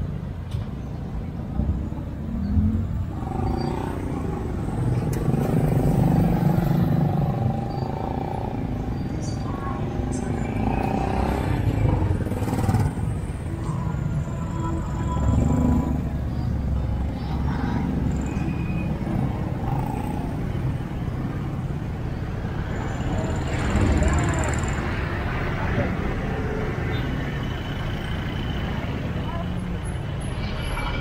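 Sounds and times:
low traffic rumble: 0.0s - 31.0s
vehicles passing: 0.0s - 31.0s.

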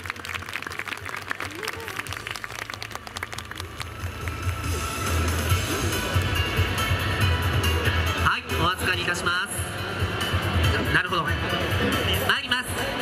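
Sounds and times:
crowd applauding: 0.0s - 6.3s
music: 0.0s - 13.0s.

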